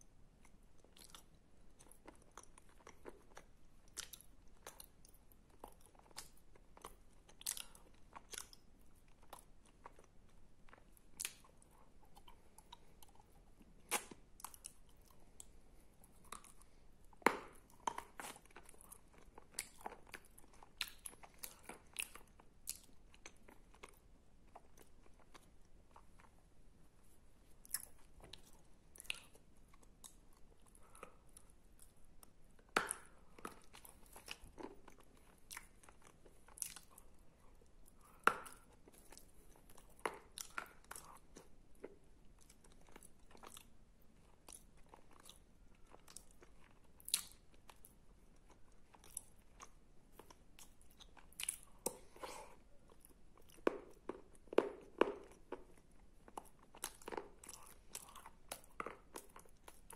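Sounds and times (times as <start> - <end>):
sticky chewing mouth sounds: 27.0 - 59.9.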